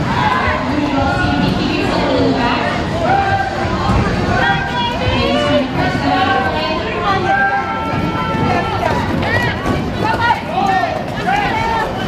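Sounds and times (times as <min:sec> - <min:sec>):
roller skates rolling on floor: 0:07.4 - 0:12.0.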